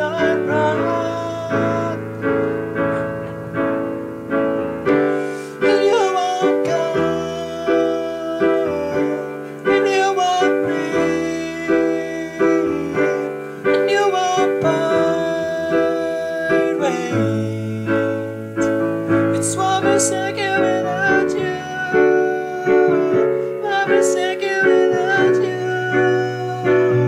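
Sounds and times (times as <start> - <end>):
slow digital piano piece: 0.0 - 27.0.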